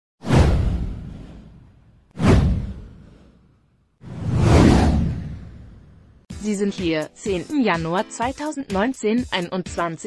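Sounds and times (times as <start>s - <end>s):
swoosh sound effect: 0.2s - 6.2s.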